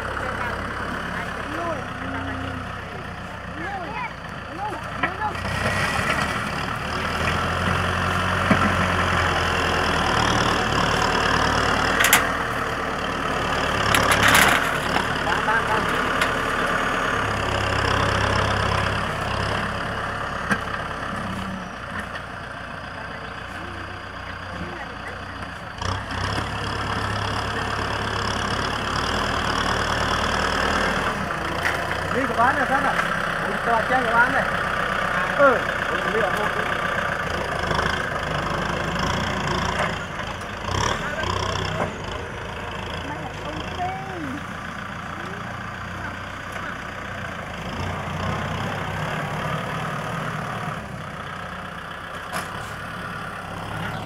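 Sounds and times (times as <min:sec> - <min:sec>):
tractor diesel engine under load: 0:00.0 - 0:54.0.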